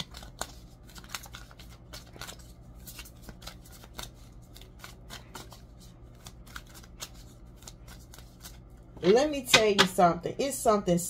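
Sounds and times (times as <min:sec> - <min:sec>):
cards being shuffled by hand: 0:00.0 - 0:09.5.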